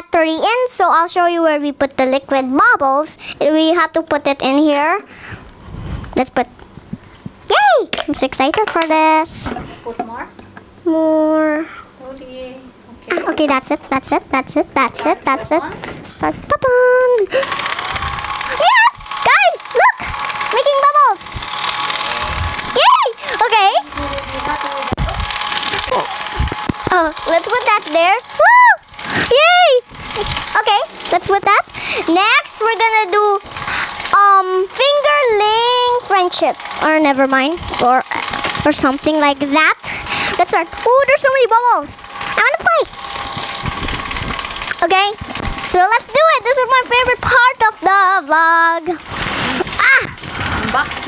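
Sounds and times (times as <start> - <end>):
bubble machine fan whirring: 0.0 - 51.0
child squealing: 19.7 - 20.1, 22.7 - 23.4, 28.4 - 29.8, 49.8 - 50.2.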